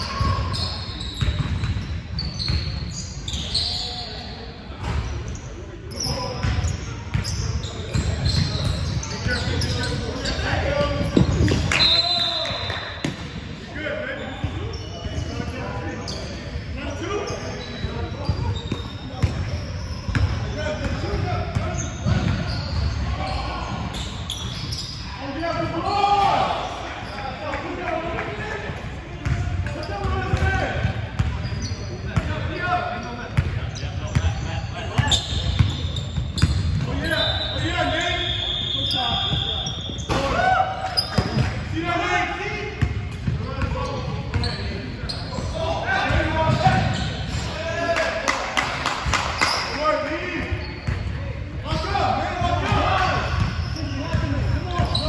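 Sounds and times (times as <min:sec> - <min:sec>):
sneakers squeaking: 0:00.0 - 0:27.8, 0:28.7 - 0:55.0.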